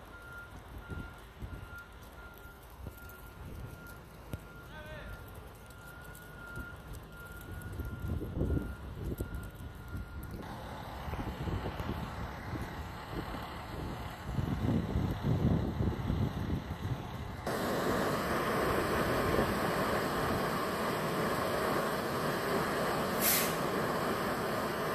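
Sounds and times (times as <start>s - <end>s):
diesel engine running: 0.0s - 24.9s
low rumbling gusts: 7.6s - 24.9s
sharp hiss: 17.5s - 24.9s.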